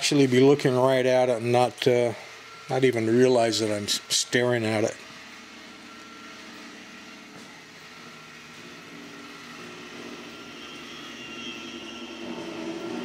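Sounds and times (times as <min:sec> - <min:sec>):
room hum and hiss: 0:00.0 - 0:13.0.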